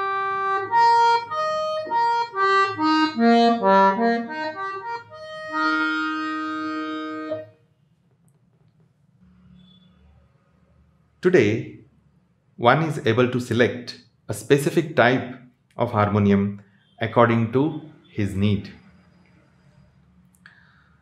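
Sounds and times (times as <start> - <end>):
harmonium melody: 0.0 - 7.6.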